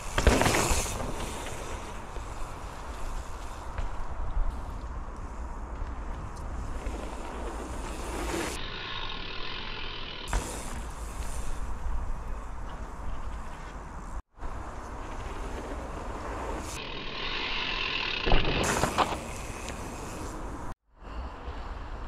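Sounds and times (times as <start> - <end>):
bike tyres rolling on dirt trail: 0.0 - 20.8.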